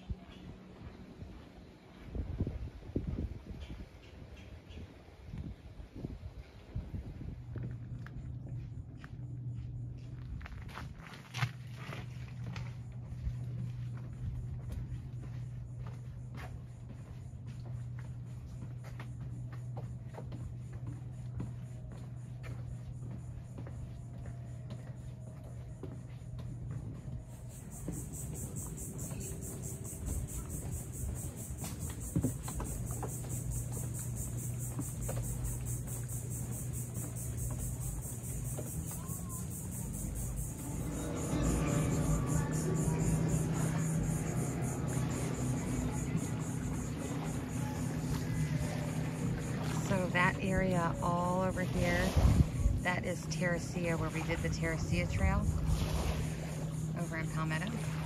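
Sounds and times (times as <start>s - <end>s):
steady low hum: 0.0s - 58.0s
insects buzzing: 12.0s - 58.0s
low multi-tone sound: 39.2s - 51.3s.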